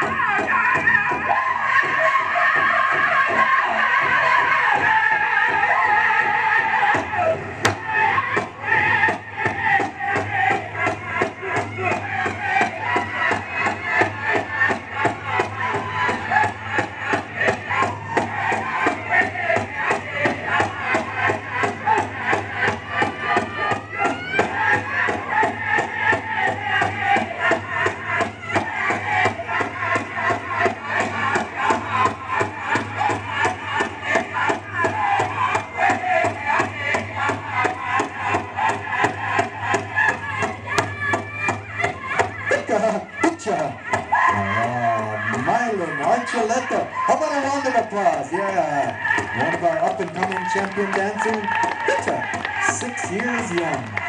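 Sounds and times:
drum beating fast: 0:00.0 - 0:54.0
voices singing: 0:00.0 - 0:54.0.

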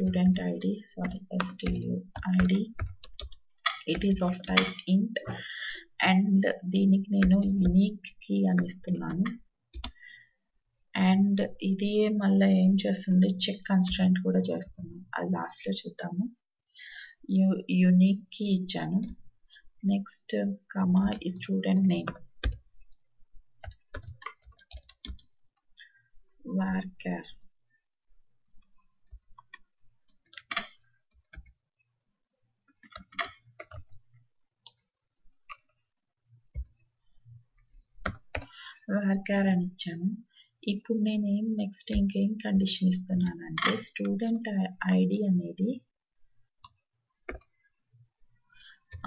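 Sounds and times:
computer keyboard clicks: 0:01.0 - 0:04.8, 0:09.8 - 0:10.0, 0:23.6 - 0:25.3, 0:29.1 - 0:31.6, 0:32.8 - 0:34.0, 0:38.0 - 0:38.6, 0:46.6 - 0:47.5.

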